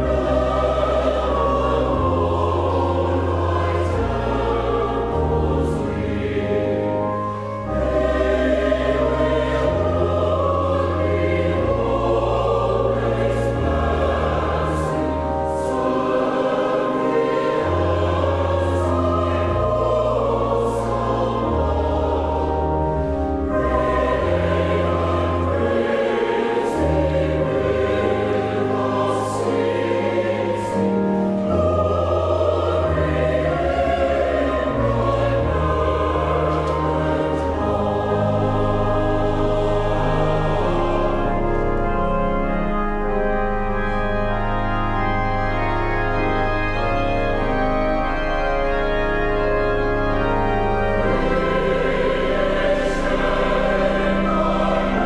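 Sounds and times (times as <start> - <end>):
choir singing in parts: 0.0 - 44.0, 48.8 - 55.0
pipe organ: 0.0 - 55.0.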